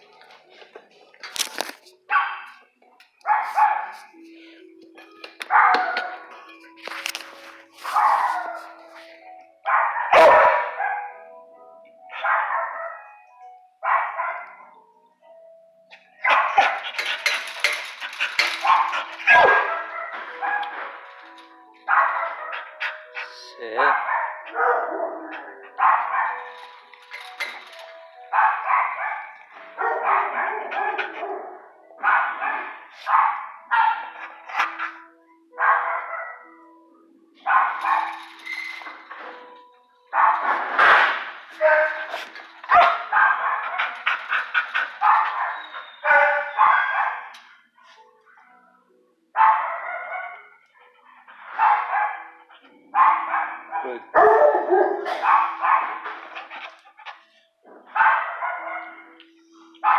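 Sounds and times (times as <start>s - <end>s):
dog barking: 2.1s - 2.6s, 3.3s - 3.9s, 5.5s - 6.2s, 9.6s - 11.2s, 12.2s - 13.0s, 13.8s - 14.6s, 16.2s - 17.0s, 18.6s - 20.7s, 21.9s - 26.5s, 28.3s - 34.9s, 35.6s - 36.4s, 37.4s - 38.2s, 40.2s - 40.6s, 41.6s - 42.0s, 42.7s - 47.3s, 49.4s - 50.5s, 51.5s - 56.3s, 57.8s - 59.1s.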